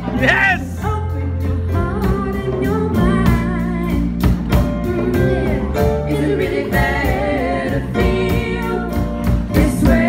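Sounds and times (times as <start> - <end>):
electric bass: 0.0 - 10.0
keyboard: 0.0 - 10.0
steady drum beat: 0.0 - 10.0
singers singing together: 0.1 - 10.0.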